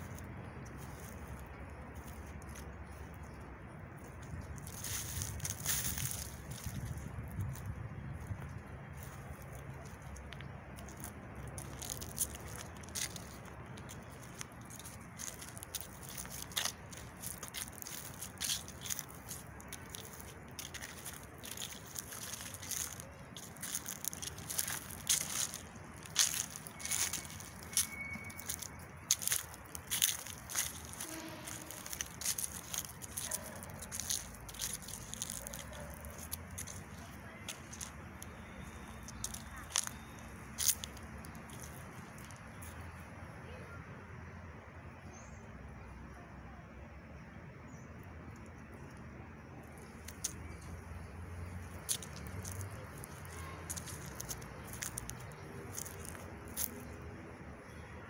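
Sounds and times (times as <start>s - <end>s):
footsteps on dry leaves: 0.0s - 43.4s, 48.8s - 58.0s
low outdoor background: 0.0s - 58.0s.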